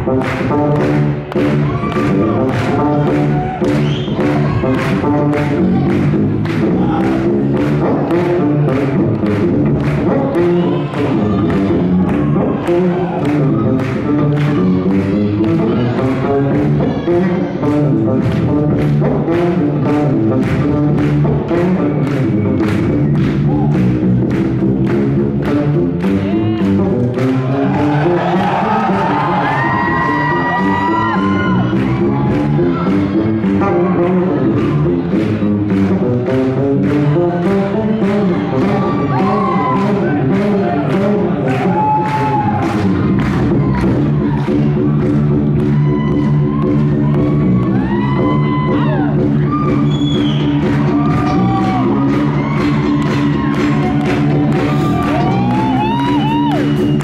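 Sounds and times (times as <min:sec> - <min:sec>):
electric bass line: 0:00.0 - 0:57.0
audience whooping: 0:27.4 - 0:33.0, 0:38.3 - 0:44.8, 0:45.6 - 0:57.0
long whistle: 0:49.8 - 0:50.6.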